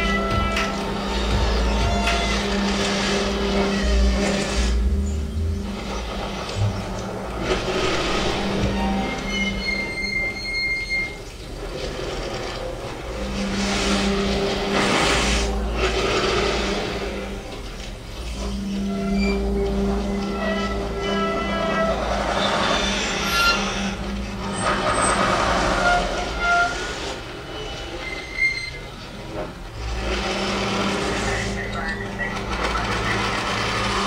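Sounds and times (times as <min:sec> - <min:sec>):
low drones: 0:00.0 - 0:34.0.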